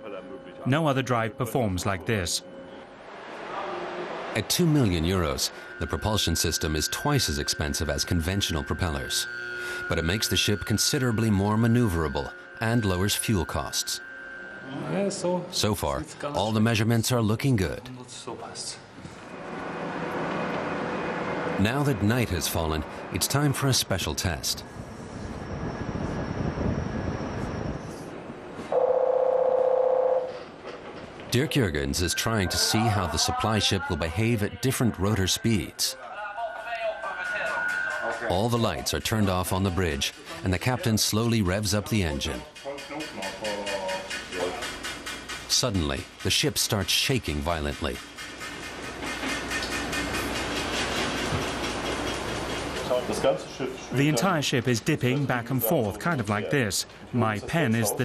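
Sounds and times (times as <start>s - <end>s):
electronic alarm buzzer tone: 5.5s - 15.1s, 28.7s - 30.4s.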